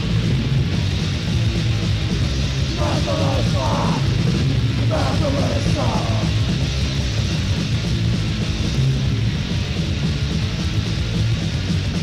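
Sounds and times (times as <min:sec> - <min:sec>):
fast punk rock music: 0:00.0 - 0:12.0.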